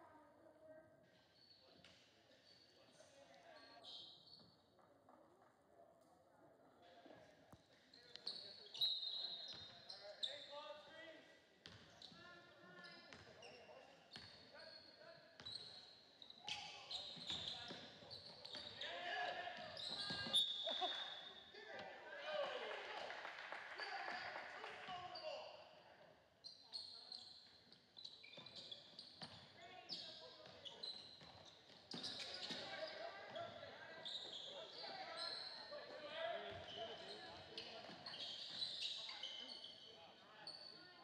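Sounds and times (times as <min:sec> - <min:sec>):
players and spectators voices: 0:04.8 - 0:41.0.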